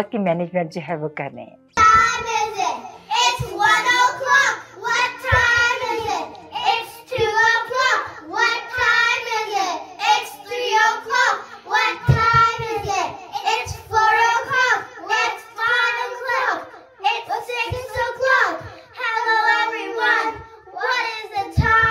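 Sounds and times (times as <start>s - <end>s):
children singing into microphones: 1.8s - 21.9s.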